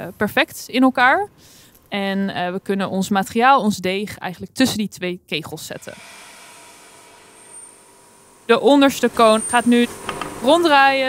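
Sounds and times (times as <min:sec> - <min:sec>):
equipment hum and hiss: 0:05.8 - 0:11.0
thin high tone: 0:07.3 - 0:10.8.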